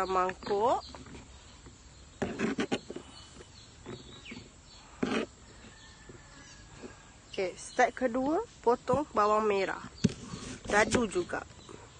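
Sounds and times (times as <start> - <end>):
bird chirp: 0.0 - 11.9.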